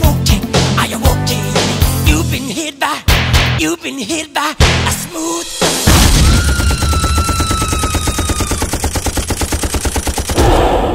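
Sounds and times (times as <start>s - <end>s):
machine-gun fire: 5.9s - 10.8s.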